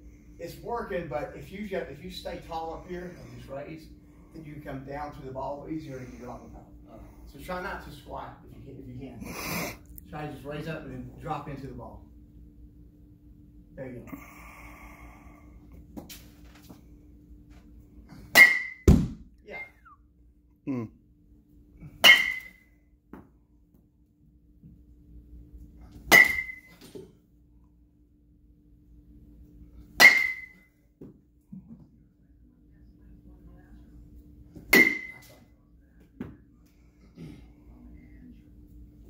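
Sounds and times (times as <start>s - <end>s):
low hum: 9.9s - 39.0s
bat hitting ball metallic ping: 18.3s - 19.1s, 22.0s - 22.7s, 26.1s - 26.9s, 30.0s - 30.7s, 34.7s - 35.3s.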